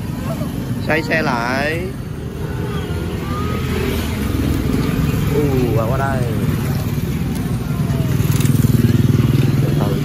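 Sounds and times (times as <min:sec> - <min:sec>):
motorbike engines: 0:00.0 - 0:10.0
street traffic rumble: 0:00.0 - 0:10.0.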